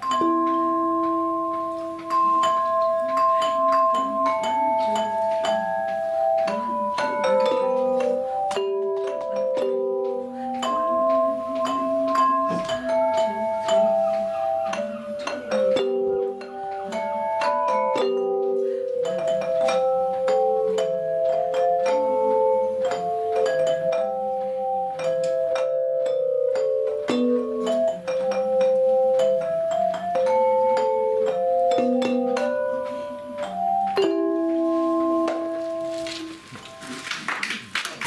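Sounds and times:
bell plates ensemble melody: 0:00.0 - 0:37.1
applause: 0:37.0 - 0:38.0.

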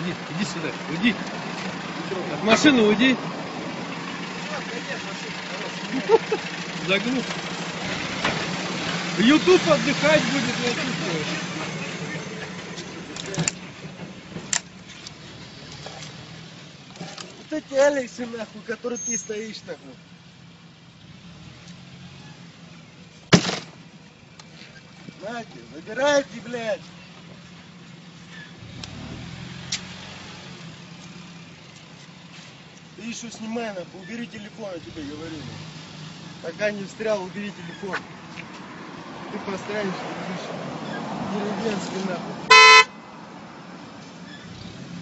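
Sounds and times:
car engine idling: 0:00.0 - 0:40.0, 0:41.6 - 0:44.6.

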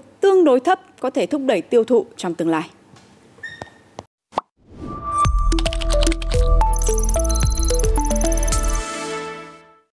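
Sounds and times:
electronic logo jingle: 0:04.8 - 0:09.0.

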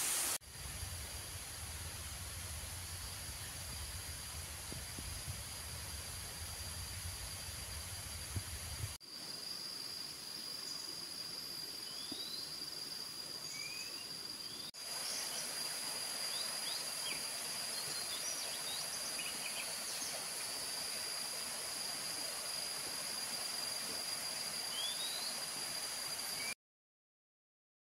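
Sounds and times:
waterfall rushing: 0:00.0 - 0:00.4
high insect drone: 0:00.0 - 0:26.6.

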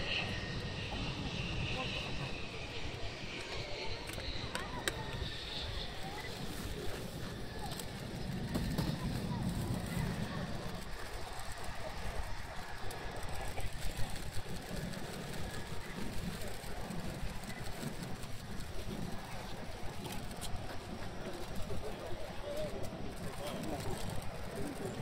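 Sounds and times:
distant jet engine rumbling: 0:00.0 - 0:25.0
people talking: 0:00.0 - 0:25.0.

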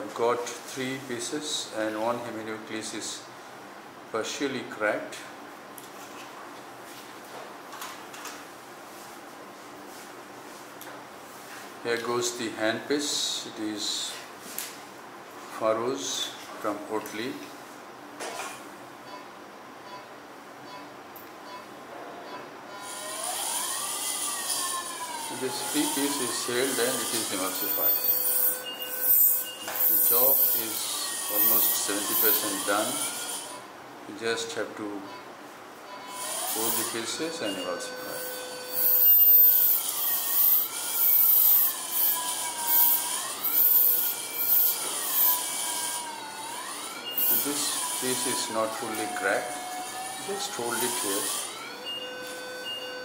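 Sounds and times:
machine feedback tone: 0:22.2 - 0:33.7, 0:35.0 - 0:53.0
steady high whine: 0:22.8 - 0:33.7, 0:35.9 - 0:53.0.

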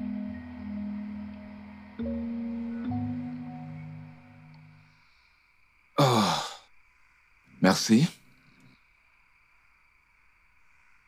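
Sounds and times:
breathy vocal sound: 0:06.0 - 0:06.6
man sighing: 0:06.0 - 0:06.6.

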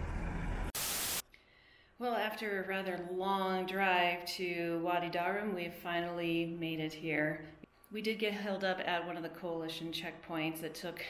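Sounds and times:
low rumble: 0:00.0 - 0:00.7
hissing static burst: 0:00.7 - 0:01.2.

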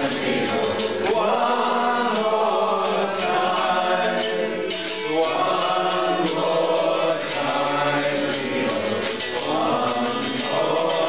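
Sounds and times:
roomful of people singing: 0:00.0 - 0:11.0.

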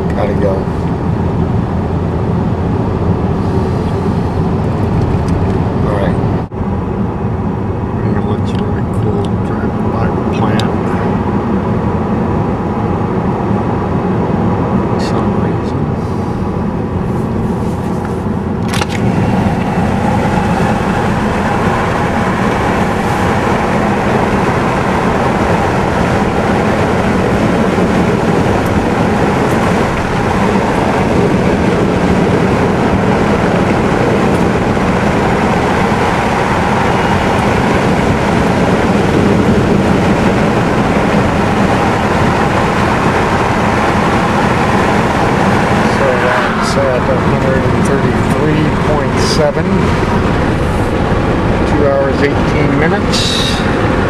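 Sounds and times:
car engine and tyre road noise: 0:00.0 - 0:54.0
sharp click: 0:18.6 - 0:19.1.

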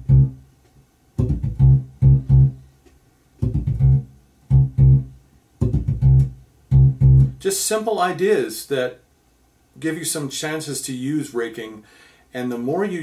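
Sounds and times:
electric bass guitar fingerstyle: 0:00.0 - 0:00.5, 0:01.2 - 0:07.5.

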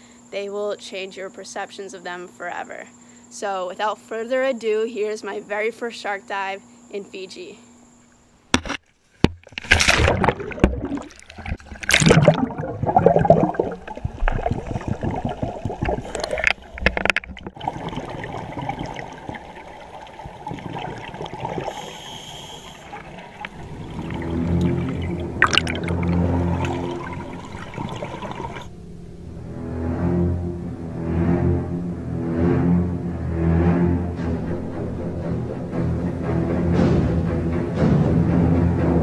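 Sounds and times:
sea water splashing: 0:09.4 - 0:31.9
muffled underwater rush and bubbling: 0:09.6 - 0:32.0
low bowed-string music: 0:23.3 - 0:39.0.

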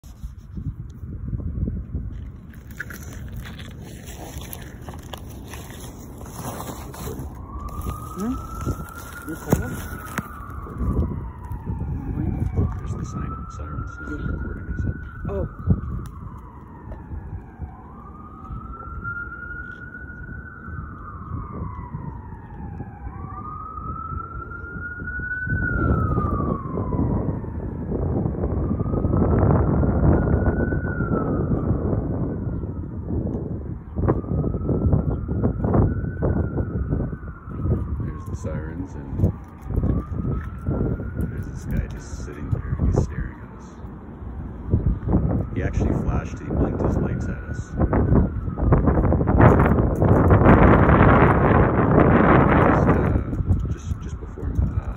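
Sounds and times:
emergency siren wailing: 0:00.1 - 0:54.9.

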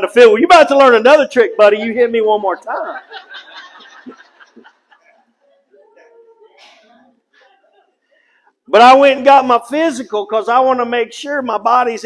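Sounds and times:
audience laughing: 0:01.7 - 0:06.1.

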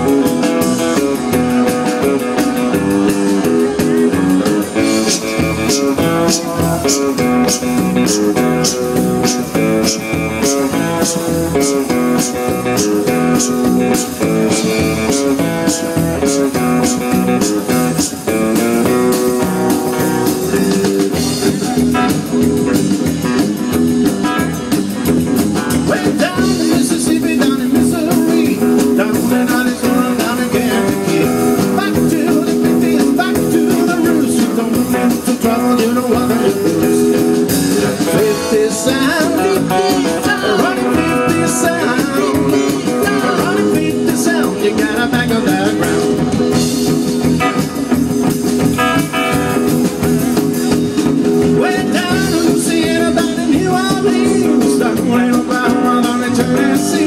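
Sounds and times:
person singing: 0:00.0 - 0:21.2, 0:25.7 - 0:46.5, 0:51.4 - 0:57.0
rock and roll band playing: 0:00.0 - 0:57.0.

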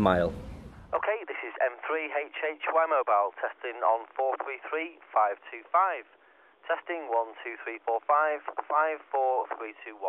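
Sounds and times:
man talking over radio: 0:00.9 - 0:06.1, 0:06.7 - 0:10.0.

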